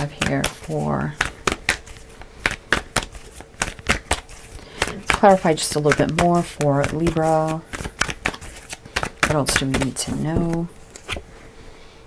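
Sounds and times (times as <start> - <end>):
cards being shuffled: 0.0 - 11.3.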